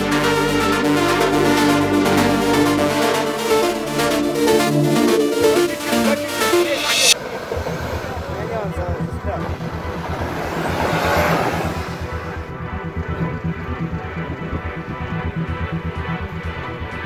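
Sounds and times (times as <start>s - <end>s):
off-road vehicle engine rumbling: 7.2s - 17.0s.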